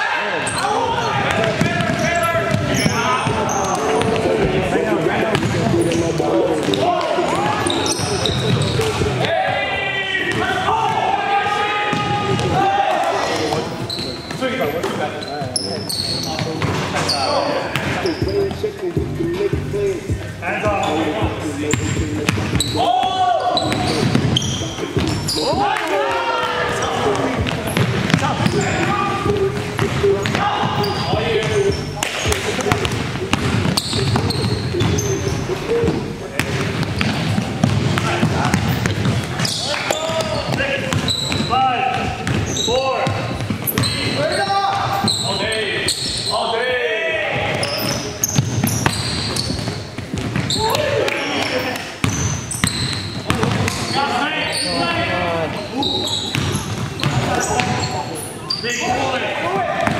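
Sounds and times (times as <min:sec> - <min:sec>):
players calling out: 0:00.0 - 0:59.9
basketball bouncing on hardwood: 0:36.4 - 0:39.4, 0:40.1 - 0:43.9, 0:48.3 - 0:50.5.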